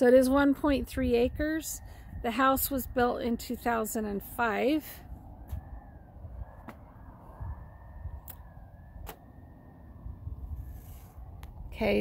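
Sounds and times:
distant siren wailing: 0.0s - 10.6s
low rumble: 0.4s - 12.0s.

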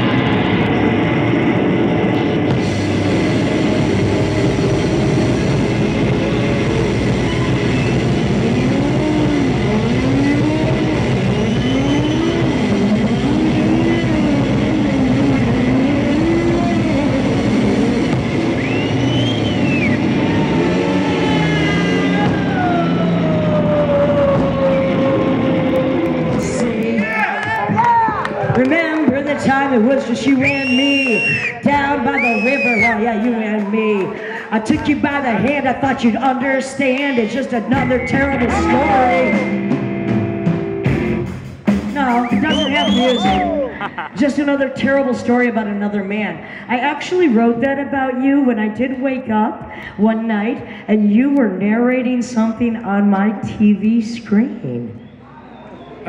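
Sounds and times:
noise-rock guitars and drums: 0.0s - 26.8s, 31.3s - 45.0s
guitar line bending in glides: 0.0s - 27.0s.

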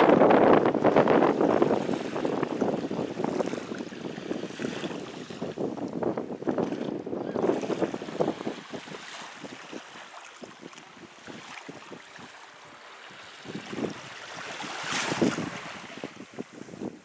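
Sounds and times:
small waves lapping at shore: 0.2s - 17.0s.

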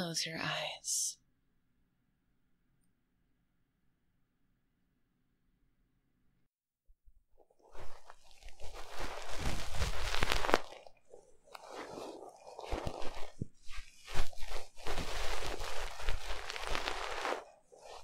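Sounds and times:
ear picks scratching microphone ears: 7.5s - 18.0s.

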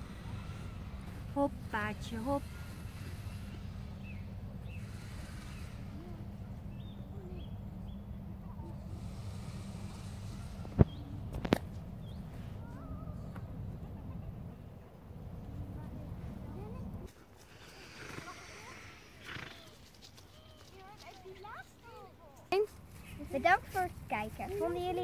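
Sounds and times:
faint distant voices: 0.0s - 25.0s.

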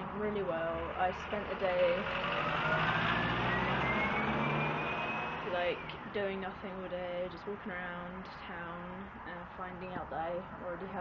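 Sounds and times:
vehicle driving past: 0.0s - 6.9s.

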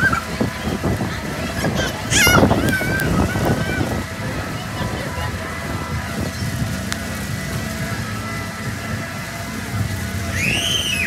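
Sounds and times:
faint fairground music: 0.0s - 11.0s
ride rumbling: 0.0s - 11.0s
high squeal: 10.3s - 11.0s.

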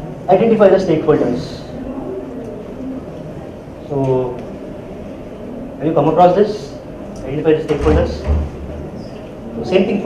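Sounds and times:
faint murmur of voice: 1.2s - 6.1s.

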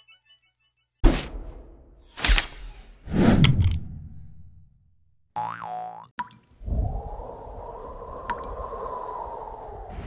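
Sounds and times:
boing rising then falling: 5.3s - 6.1s
steady rushing whoosh: 6.6s - 10.0s.

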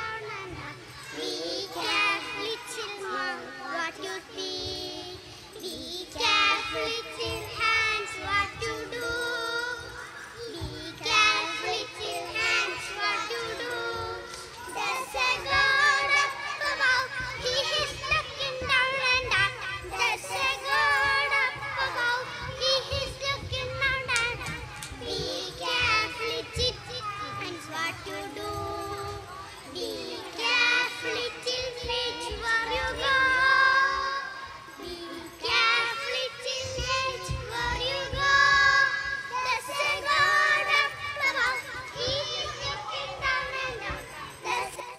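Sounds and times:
girls singing in chorus: 0.0s - 44.9s.

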